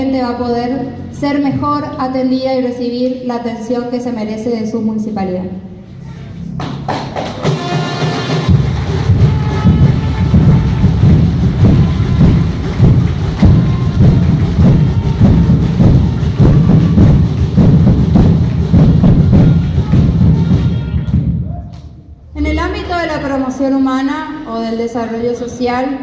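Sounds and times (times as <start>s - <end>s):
audience applauding: 6.6s - 21.3s.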